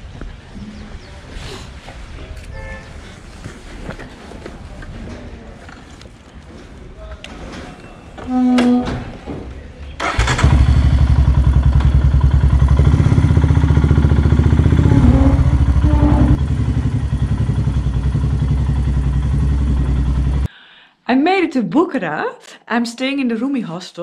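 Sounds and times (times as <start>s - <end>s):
motorcycle engine starting and running: 10.0s - 20.5s.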